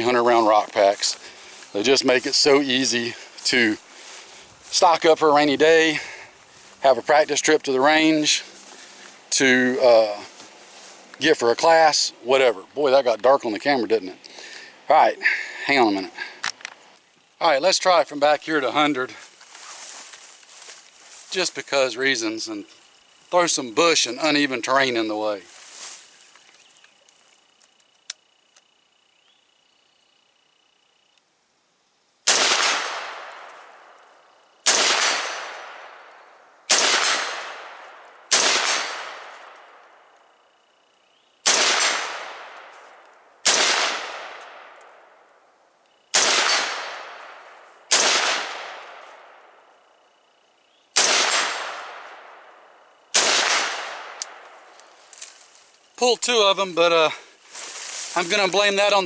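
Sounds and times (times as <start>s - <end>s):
rifle shots echoing: 32.3s - 33.9s, 34.6s - 39.9s, 41.4s - 42.7s, 43.4s - 45.0s, 46.1s - 49.5s, 51.0s - 54.6s.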